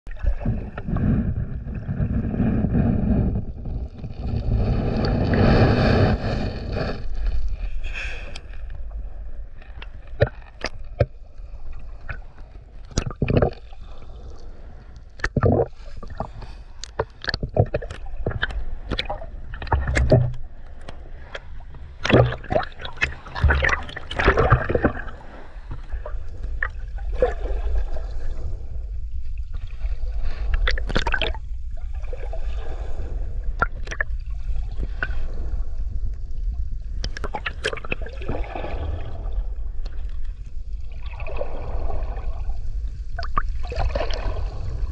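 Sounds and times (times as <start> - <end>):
muffled water sloshing underwater: 0.0 - 44.9
steady low rumble: 0.1 - 44.9.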